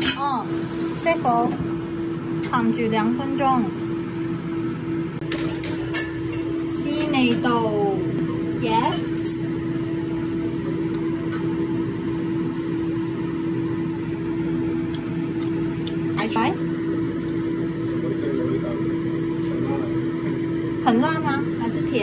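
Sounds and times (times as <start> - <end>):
appliance fan hum: 0.0 - 22.0.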